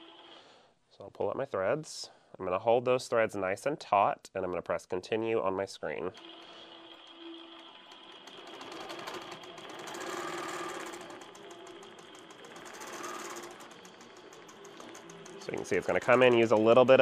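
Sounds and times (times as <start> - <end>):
machine running noise: 6.1 - 17.0
quilting machine needle strokes: 6.1 - 17.0.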